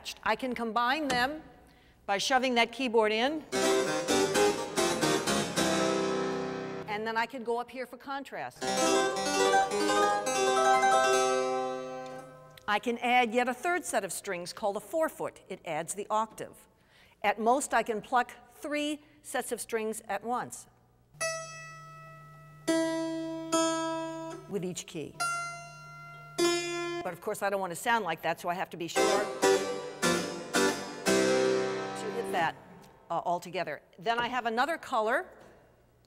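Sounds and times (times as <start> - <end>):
harpsichord playing plucked notes: 3.5 - 6.9, 8.6 - 12.5, 21.2 - 24.6, 25.2 - 27.0, 29.0 - 32.5.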